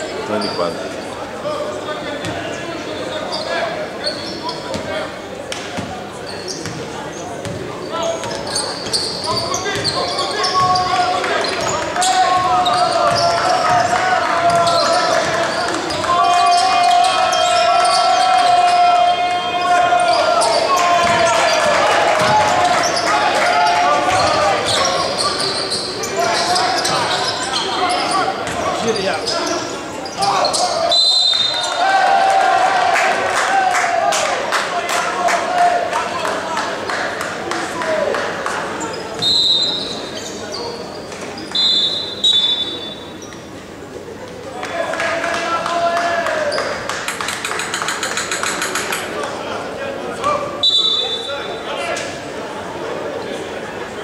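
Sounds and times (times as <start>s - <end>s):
voices calling and shouting: 6.0s - 36.4s.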